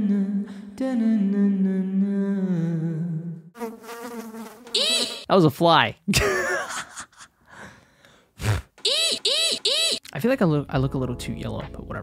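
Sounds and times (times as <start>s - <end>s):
high-pitched yelps: 4.8s - 5.2s, 8.8s - 10.0s
man breathing softly: 7.5s - 8.4s.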